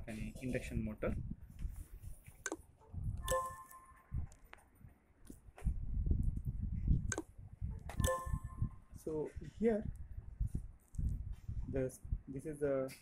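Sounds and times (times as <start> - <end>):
sharp clicks: 7.1 - 7.3.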